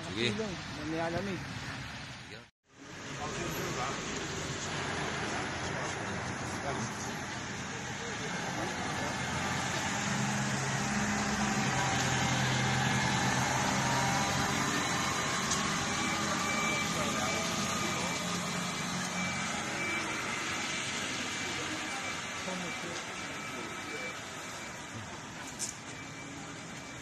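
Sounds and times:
street noise: 0:00.0 - 0:27.0
tractor diesel engine passing: 0:02.9 - 0:25.5.

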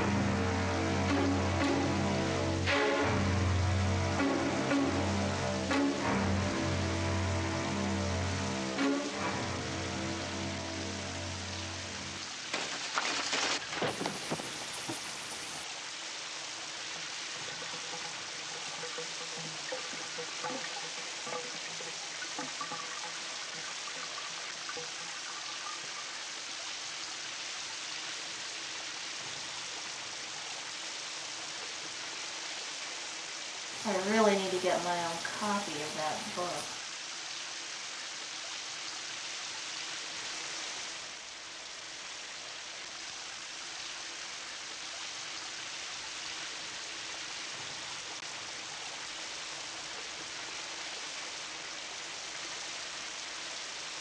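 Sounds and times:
low sustained music: 0:00.0 - 0:12.2
shower water spraying: 0:12.4 - 0:15.7, 0:33.7 - 0:36.8.

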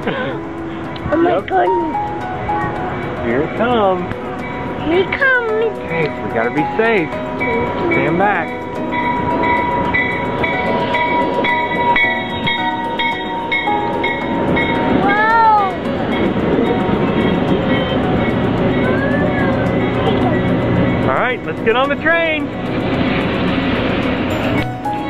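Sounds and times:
passenger train passing: 0:00.0 - 0:25.0.

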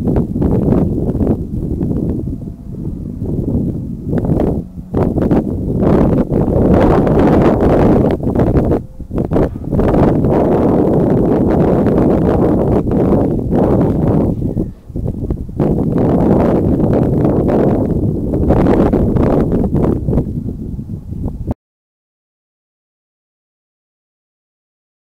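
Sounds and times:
wind buffeting microphone: 0:00.0 - 0:21.6.

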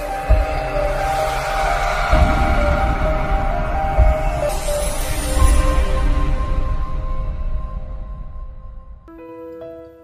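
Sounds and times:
low rumble: 0:00.0 - 0:09.1.

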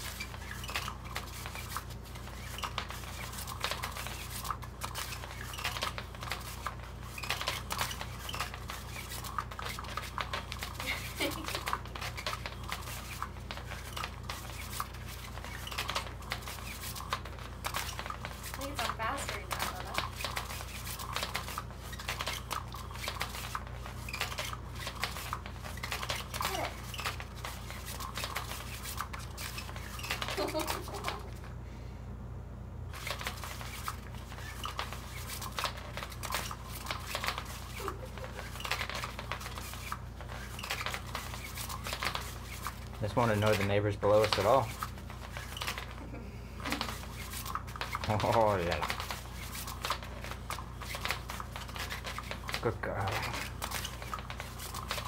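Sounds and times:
toy motor humming: 0:00.0 - 0:31.4
fabric rustling: 0:32.9 - 0:55.0.

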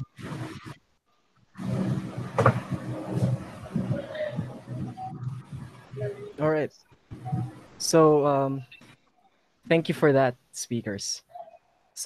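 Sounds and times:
rumbling microphone noise: 0:01.6 - 0:06.4.

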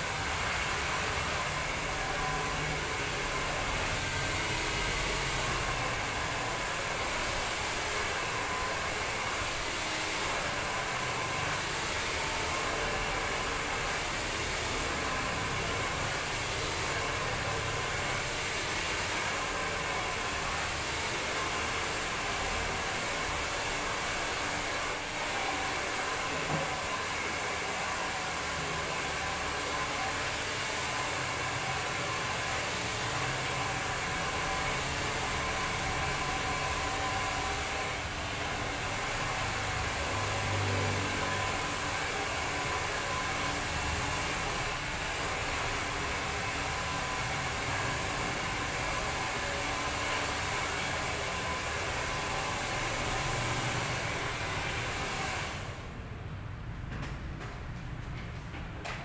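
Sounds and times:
hair dryer running: 0:00.0 - 0:56.0.

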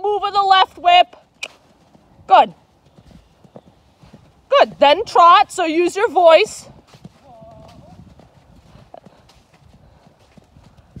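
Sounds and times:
horse hoofbeats on sand: 0:00.1 - 0:11.0.

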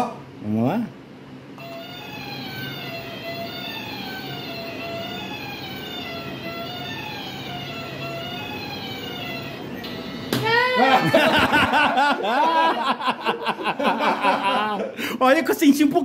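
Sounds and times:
wavering electronic tune: 0:01.6 - 0:10.4.

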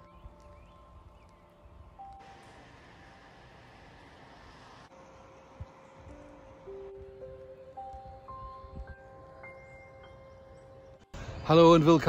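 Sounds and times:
rising bell-like chime notes: 0:05.4 - 0:11.2.

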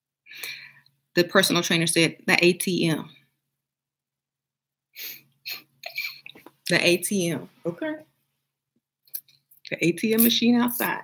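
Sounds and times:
woman chuckling: 0:05.5 - 0:06.4.

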